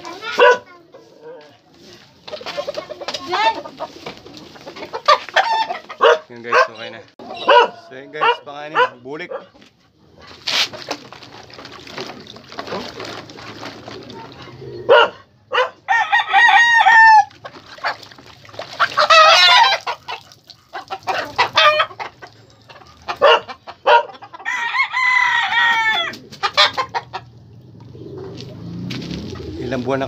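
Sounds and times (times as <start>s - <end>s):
roosters crowing: 3.3s - 8.9s, 14.6s - 18.0s, 18.7s - 29.8s.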